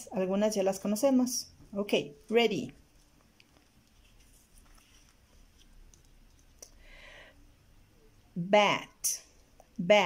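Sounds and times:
paper card set on table: 0:02.2 - 0:06.8.

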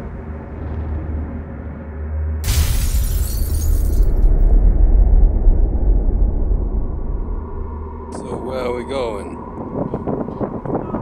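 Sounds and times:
deep rumbling drone: 0:00.0 - 0:10.8.

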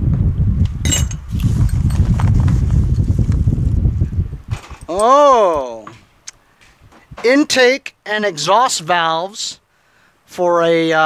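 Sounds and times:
metal parts clinking: 0:00.8 - 0:02.0.

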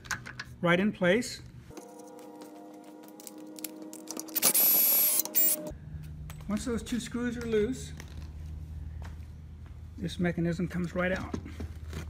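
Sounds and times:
steady multi-tone hum: 0:00.0 - 0:12.0
cordless drill whirring: 0:04.4 - 0:05.6.

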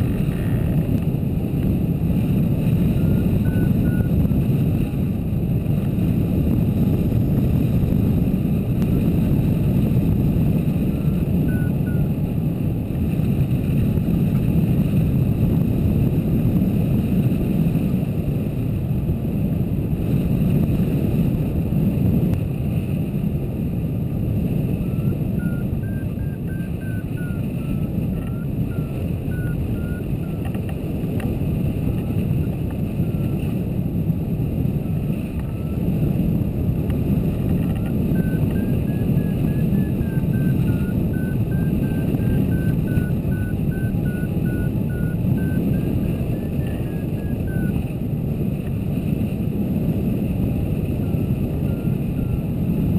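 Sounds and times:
wind buffeting microphone: 0:00.0 - 0:52.9
faint wavering beeping tone: 0:02.9 - 0:04.2, 0:24.8 - 0:30.5, 0:35.4 - 0:35.8, 0:37.8 - 0:47.7.

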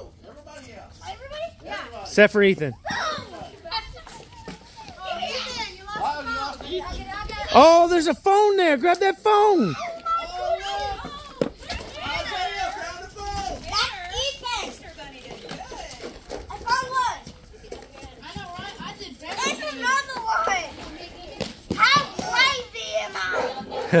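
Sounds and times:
children calling out and chattering: 0:00.0 - 0:24.0.

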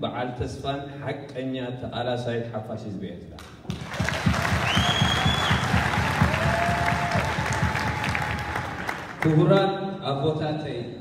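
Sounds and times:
audience applauding: 0:03.7 - 0:09.4.

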